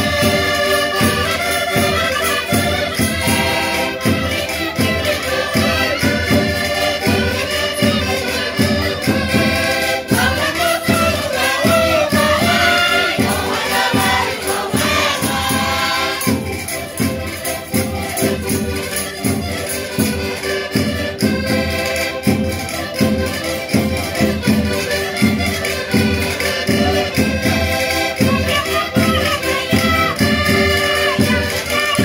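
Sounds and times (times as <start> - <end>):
button accordions playing folk tune: 0.0 - 32.0
voices singing along: 3.0 - 6.0, 8.2 - 16.8.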